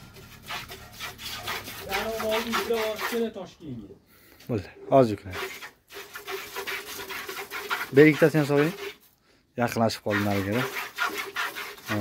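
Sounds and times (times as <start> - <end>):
person's voice: 1.8 - 5.3
milk squirting into a bucket: 5.5 - 9.0.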